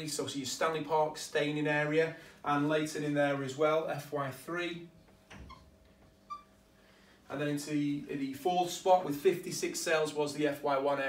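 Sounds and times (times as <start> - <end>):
marker squeaking on whiteboard: 5.3 - 6.6.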